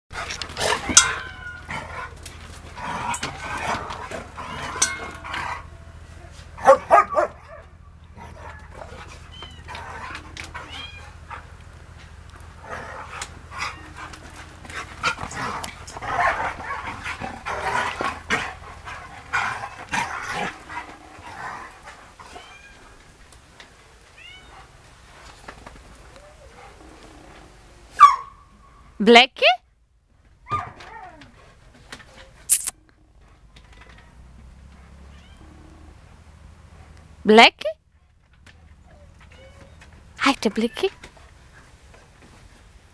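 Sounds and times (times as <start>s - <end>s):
dogs barking in short calls: 6.4s - 9.0s, 27.9s - 28.5s.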